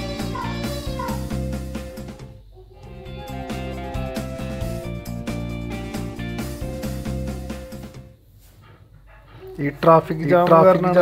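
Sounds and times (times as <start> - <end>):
background music: 0.0 - 8.2
man speaking: 9.6 - 11.0.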